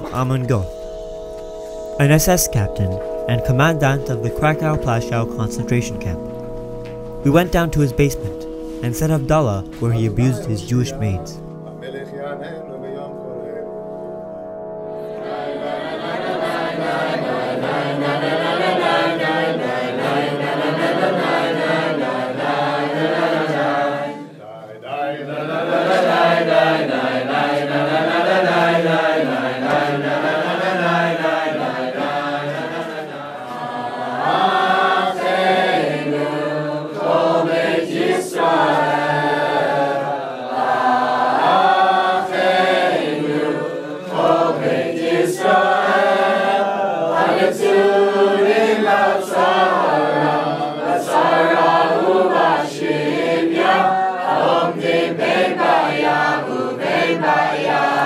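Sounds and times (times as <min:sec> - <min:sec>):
group singing in unison: 0:14.9 - 0:58.0.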